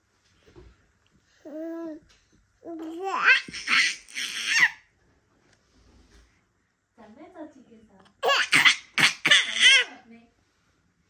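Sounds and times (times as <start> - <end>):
baby laughing: 2.8 - 4.8, 8.2 - 9.9.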